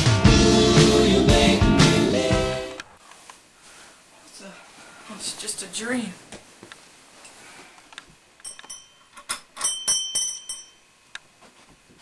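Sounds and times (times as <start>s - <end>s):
high bell-like ringing: 8.4s - 11.0s.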